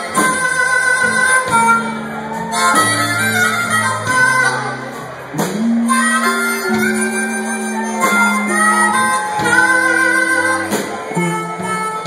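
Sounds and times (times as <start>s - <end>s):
amplified blues harmonica: 0.0s - 12.0s
bass guitar: 0.0s - 12.0s.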